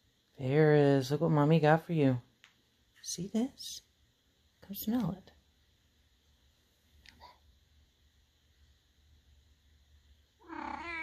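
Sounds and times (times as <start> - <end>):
cat meowing: 10.4 - 11.0.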